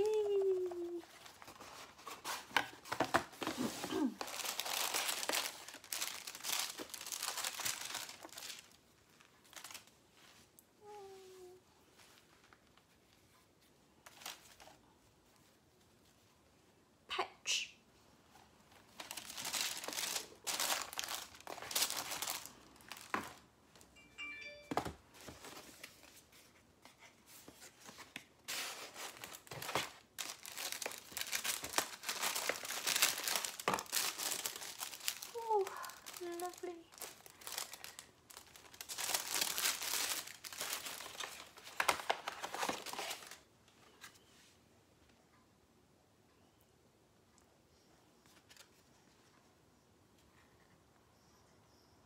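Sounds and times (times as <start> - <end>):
tissue paper crinkling: 0.0 - 12.9, 18.8 - 23.4, 25.3 - 43.5.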